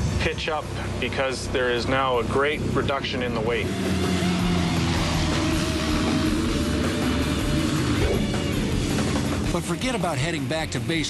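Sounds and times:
rock music with electric guitar: 3.5 - 11.0.

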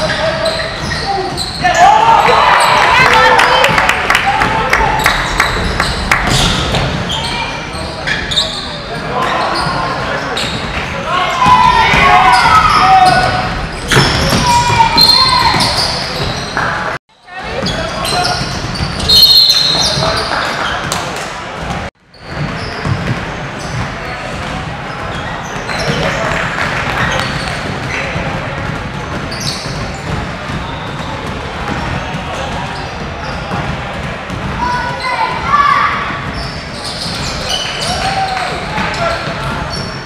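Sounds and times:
people calling out in gym: 0.0 - 20.5, 34.5 - 40.0
basketball bouncing on court: 4.4 - 7.2, 11.4 - 16.5, 21.6 - 37.4.

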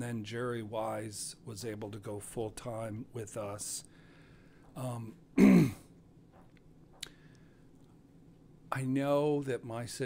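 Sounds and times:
man clearing his throat: 5.4 - 5.9.

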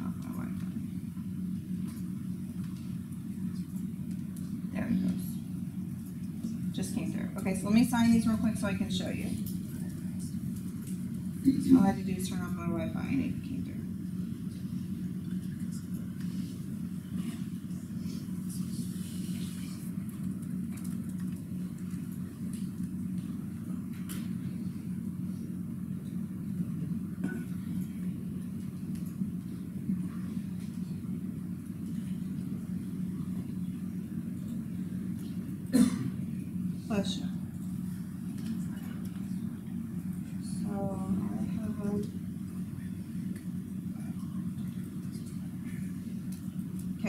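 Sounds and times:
low room hum: 0.0 - 47.0.

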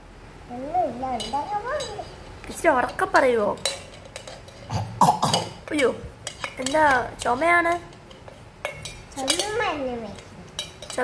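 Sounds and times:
young child's voice: 9.2 - 10.3.

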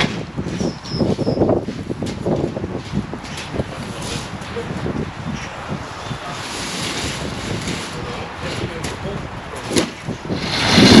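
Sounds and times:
wind on microphone: 0.0 - 11.0
broom scraping wet concrete: 6.2 - 8.6, 10.3 - 11.0.

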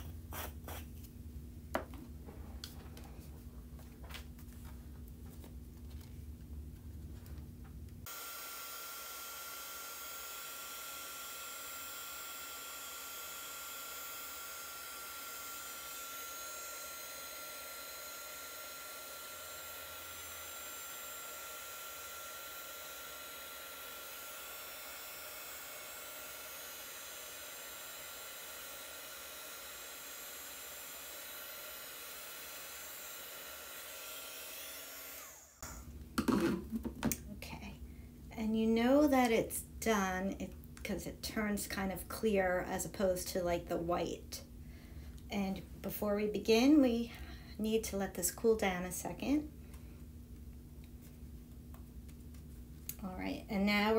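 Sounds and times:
heat gun blowing with whine: 8.0 - 36.4.

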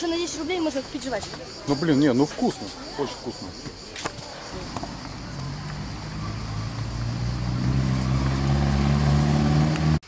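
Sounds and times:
passing car engine accelerating: 4.9 - 10.0.

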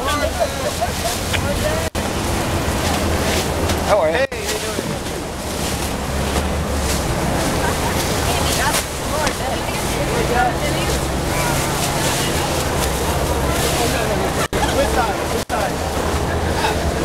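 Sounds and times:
people talking: 0.0 - 2.0, 2.8 - 17.0
plastic bags rustling: 2.7 - 15.0.

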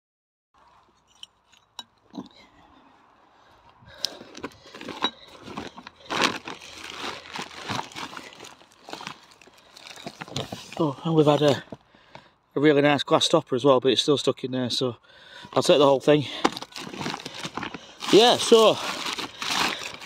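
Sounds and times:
plastic bag crinkling: 4.2 - 11.6, 16.4 - 20.0.

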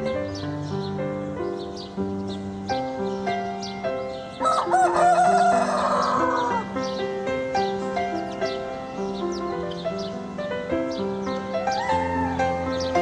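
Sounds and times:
slow background music: 0.0 - 13.0
rooster crowing: 4.4 - 6.7, 11.7 - 12.6.

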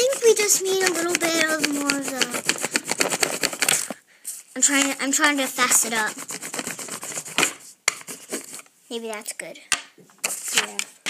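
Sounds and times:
crayon scratching on paper: 0.0 - 8.6, 10.2 - 10.8.

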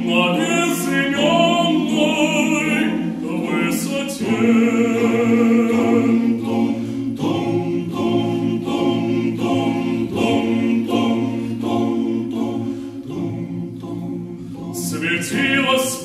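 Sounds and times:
choir singing a cappella: 0.0 - 16.0.

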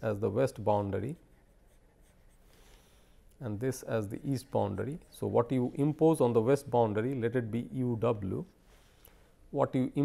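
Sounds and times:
stylus scratching on screen: 0.2 - 2.8.

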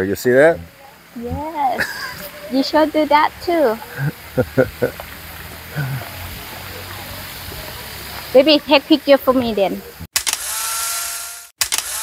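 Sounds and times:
even hiss: 0.0 - 10.1
person's voice: 0.4 - 4.1, 5.8 - 10.1.

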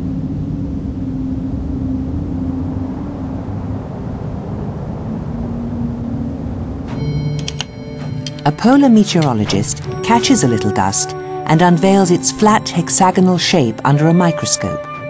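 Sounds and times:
low rumble: 0.0 - 13.8
sustained chord of steady tones: 0.3 - 14.8.

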